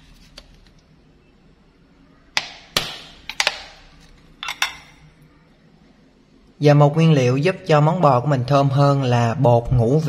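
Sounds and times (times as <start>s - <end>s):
metal spoon clinking on glass bowl: 4.4s - 5.1s.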